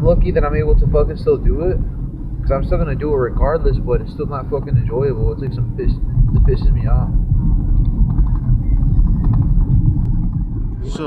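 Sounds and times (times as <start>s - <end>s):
loud low rumble: 0.0s - 11.0s.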